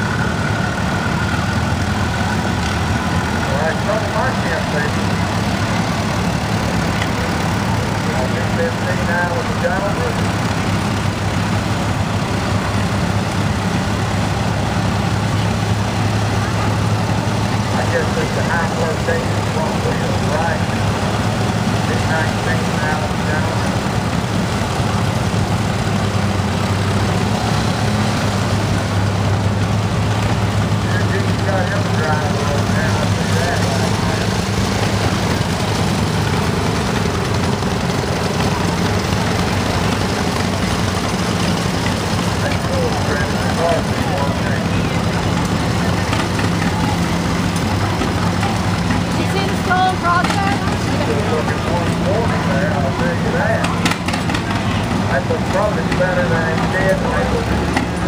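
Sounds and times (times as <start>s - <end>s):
crowd talking: 0.0s - 58.0s
tractor engines running: 0.0s - 58.0s.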